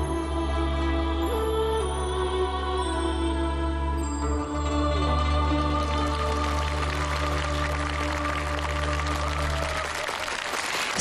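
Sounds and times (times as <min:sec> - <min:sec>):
audience applauding: 0:05.7 - 0:11.0.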